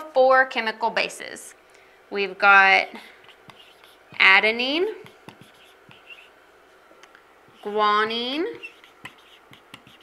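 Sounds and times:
marker squeaking on whiteboard: 0:02.9 - 0:06.4, 0:08.4 - 0:10.0.

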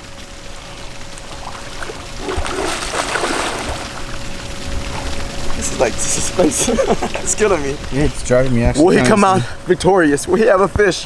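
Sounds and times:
water sloshing and splashing: 0:00.0 - 0:08.2.

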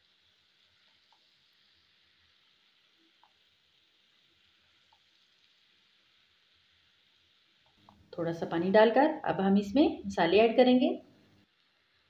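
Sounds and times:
onions sizzling in a pan: 0:00.0 - 0:12.0.

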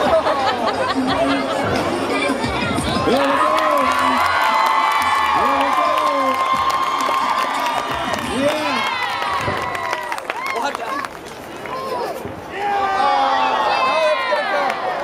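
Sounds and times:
crowd cheering and shouting: 0:00.0 - 0:15.0.

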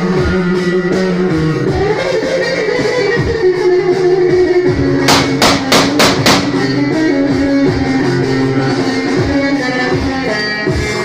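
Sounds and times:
sharp strikes: 0:05.1 - 0:07.0.

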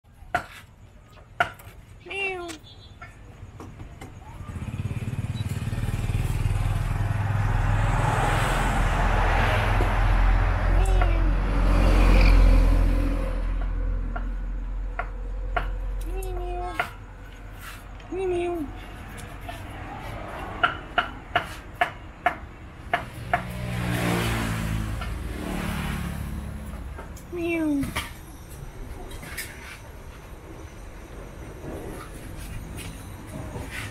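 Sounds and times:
vehicle engine passing by: 0:04.4 - 0:14.8, 0:18.6 - 0:21.7, 0:22.7 - 0:27.4.

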